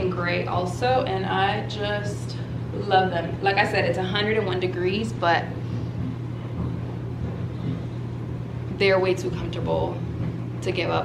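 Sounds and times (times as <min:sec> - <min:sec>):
laundry machine humming: 0:00.0 - 0:11.0.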